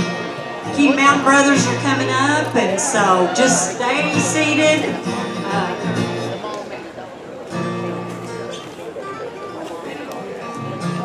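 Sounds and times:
acoustic guitars strummed: 0.0 - 6.6, 7.5 - 8.7, 10.4 - 11.0
string band music: 0.0 - 6.6
voices: 0.0 - 11.0.

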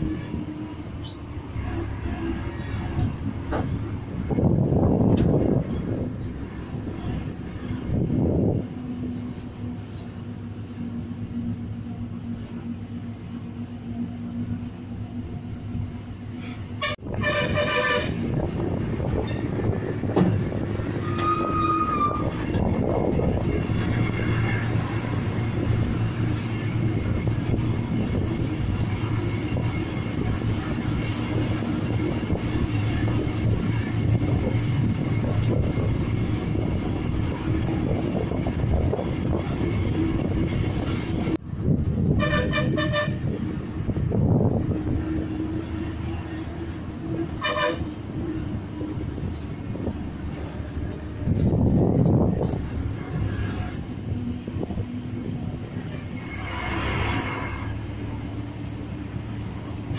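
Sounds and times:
bus engine running: 0.0 - 59.9
vehicle horn toots: 16.8 - 18.2, 42.2 - 43.3, 47.4 - 47.9.

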